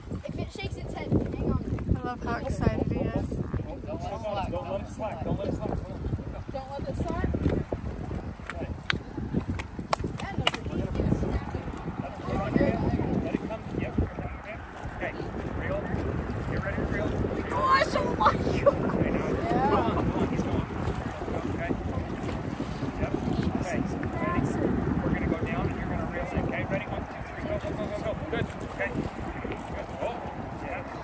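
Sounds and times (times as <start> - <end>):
faint voices: 0.0 - 31.0
wind buffeting microphone: 0.0 - 31.0.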